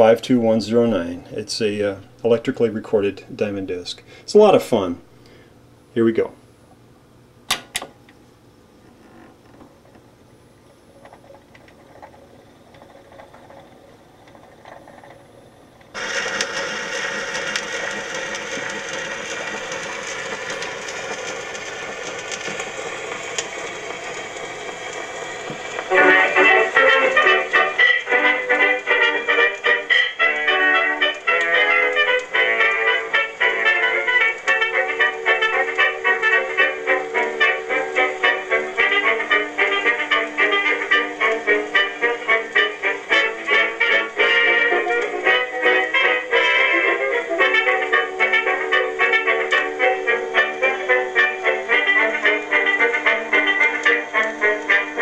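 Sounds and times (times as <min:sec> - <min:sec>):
record surface hiss: 0:00.0 - 0:55.0
jazz dance band with brass: 0:25.8 - 0:55.0.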